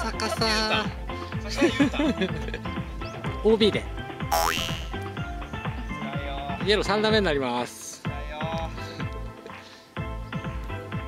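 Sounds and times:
upbeat background music: 0.0s - 8.0s
tone swooping in pitch: 4.4s - 5.0s.

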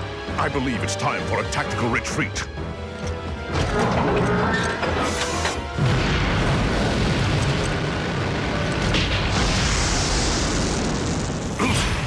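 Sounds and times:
soundtrack boom: 5.7s - 12.0s.

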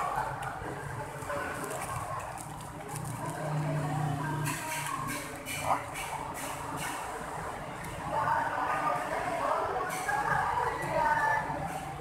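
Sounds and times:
plastic bag crinkling: 1.0s - 3.7s.

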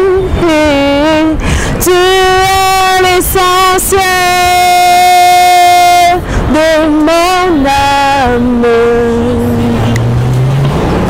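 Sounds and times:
woman singing: 0.0s - 9.9s.

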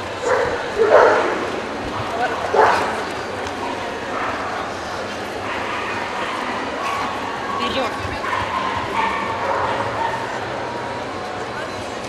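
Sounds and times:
people chattering: 0.0s - 12.0s
dogs barking and yipping: 0.2s - 1.5s, 8.2s - 10.4s.

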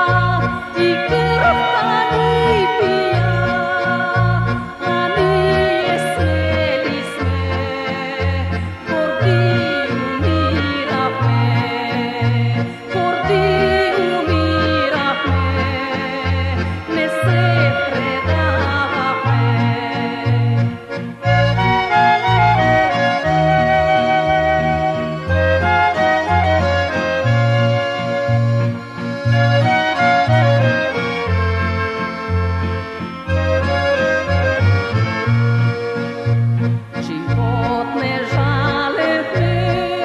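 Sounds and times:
pulsing bass notes: 0.0s - 2.6s
woman singing: 0.0s - 20.8s, 37.0s - 40.0s
accordion-led folk band: 0.0s - 40.0s
acoustic guitar: 0.0s - 40.0s
bass notes: 0.0s - 40.0s.

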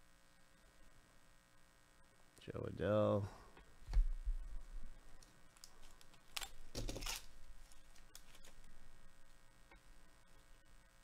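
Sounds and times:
trading cards and wrappers handled: 5.1s - 8.8s.

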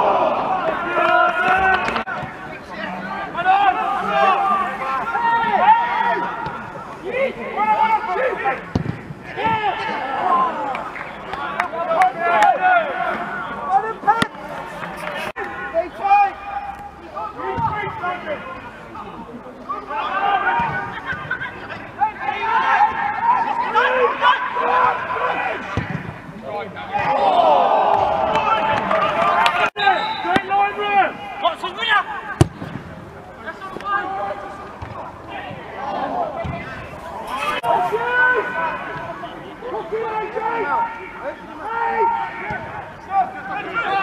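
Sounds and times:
voices calling and shouting: 0.0s - 44.0s.

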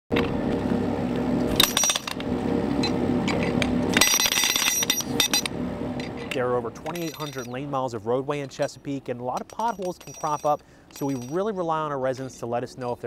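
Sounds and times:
engine running: 0.1s - 13.0s.

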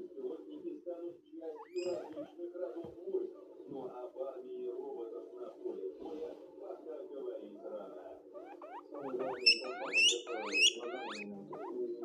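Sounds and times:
guinea pig wheeking: 1.5s - 2.4s, 8.3s - 12.0s.

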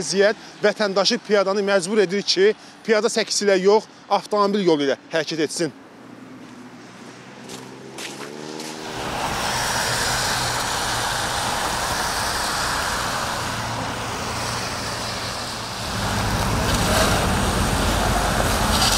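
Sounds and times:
cars passing with tyre hiss: 0.0s - 18.9s
deep traffic rumble: 0.0s - 18.9s.

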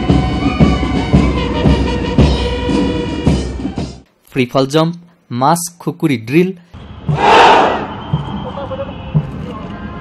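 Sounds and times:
parade ground noise: 6.8s - 10.0s
soldiers shouting in unison: 7.1s - 8.0s.

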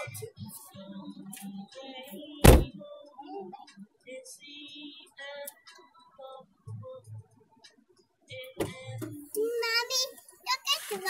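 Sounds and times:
car door clunk: 2.4s - 2.8s
child singing and babbling: 8.6s - 11.0s.

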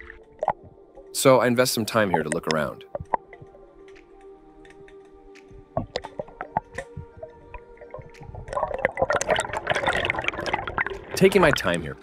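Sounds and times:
underwater air bubbles: 1.8s - 3.7s, 5.5s - 11.8s.

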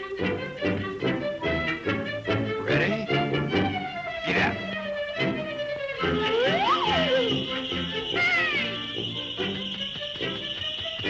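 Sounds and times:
cartoon orchestral music: 0.0s - 11.0s.

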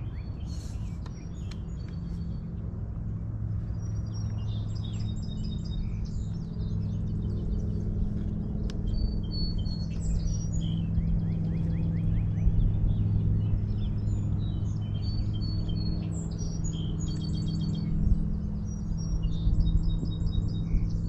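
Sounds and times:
songbirds chirping: 0.0s - 21.0s
steady low hum: 0.0s - 21.0s.

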